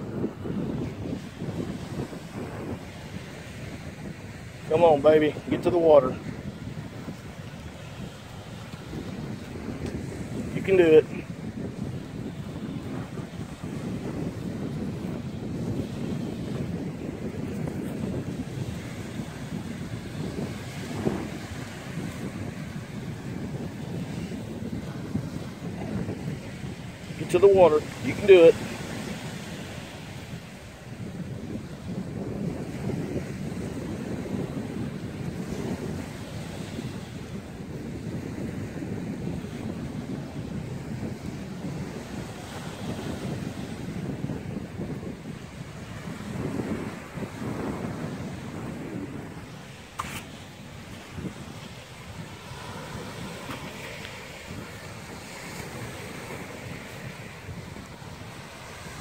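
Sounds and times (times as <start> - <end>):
surf washing onto beach: 0.0 - 59.0
wind buffeting microphone: 0.0 - 59.0.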